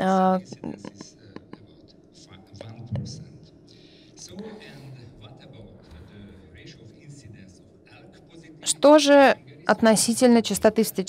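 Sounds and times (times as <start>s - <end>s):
person speaking: 0.0s - 1.6s.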